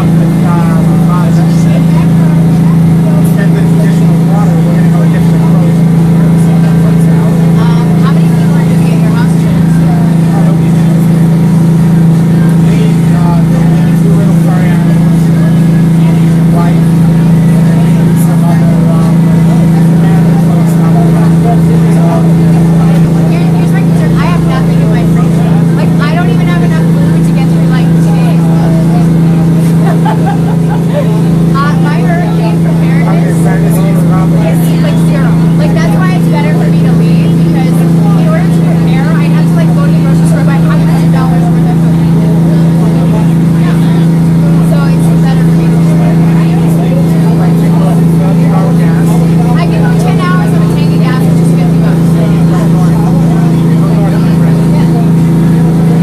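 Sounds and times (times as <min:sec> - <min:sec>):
boat engine droning: 0:00.0 - 0:56.0
people talking: 0:00.0 - 0:56.0.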